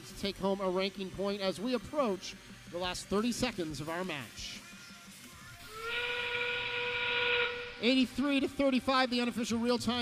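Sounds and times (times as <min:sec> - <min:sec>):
train whistle over loudspeakers: 0:05.6 - 0:07.8.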